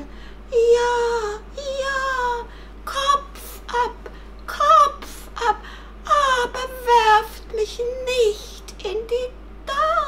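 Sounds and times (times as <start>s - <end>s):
woman wailing in whimpering voice: 4.5s - 7.1s.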